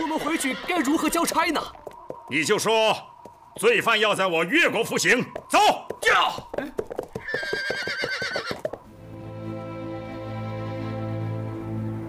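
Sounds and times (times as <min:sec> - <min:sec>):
horse whinnying: 0:00.0 - 0:01.1, 0:06.4 - 0:08.8
hooves clopping: 0:00.0 - 0:09.0.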